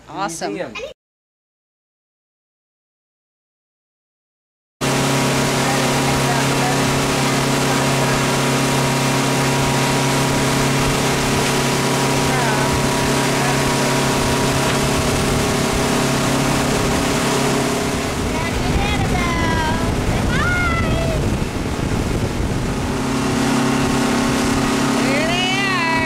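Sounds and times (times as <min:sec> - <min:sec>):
motorboat engine drone: 0:04.8 - 0:26.0
water rushing past hull: 0:04.8 - 0:26.0
wind noise: 0:04.8 - 0:26.0.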